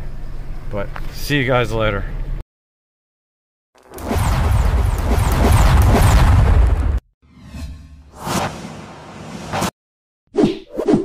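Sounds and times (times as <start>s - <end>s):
whoosh: 3.8s - 9.7s.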